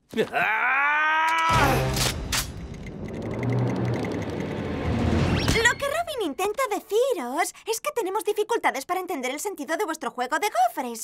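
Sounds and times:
fast electronic ticking pulse: 2.6 - 5.1.

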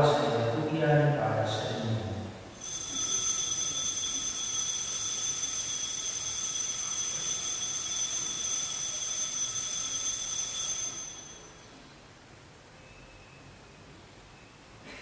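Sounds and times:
high-pitched ringing tone: 2.5 - 11.8.

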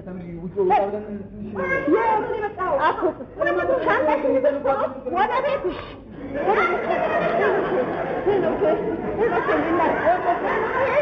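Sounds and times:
babble of overlapping voices: 0.0 - 11.0.

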